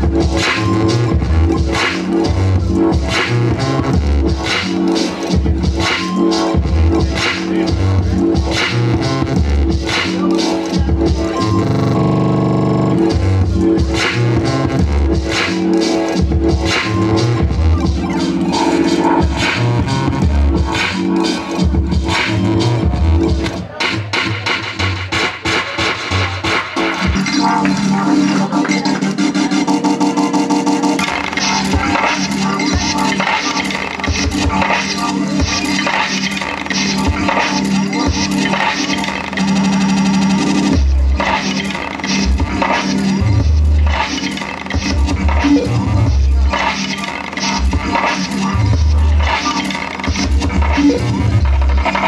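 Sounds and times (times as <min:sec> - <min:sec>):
deep bass notes: 0:00.0 - 0:04.5, 0:06.6 - 0:09.9, 0:10.8 - 0:15.4, 0:16.2 - 0:23.6, 0:39.4 - 0:41.4, 0:42.2 - 0:44.0, 0:44.8 - 0:46.6, 0:47.6 - 0:49.4, 0:50.1 - 0:52.0.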